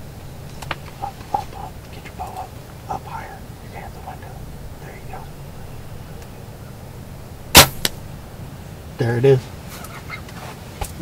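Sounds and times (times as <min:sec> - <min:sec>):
bow shot crack: 0:07.4 - 0:08.2.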